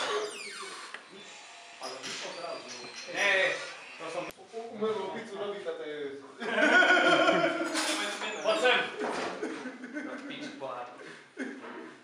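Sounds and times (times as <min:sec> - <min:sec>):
door hinge creaking: 0:00.0 - 0:01.1.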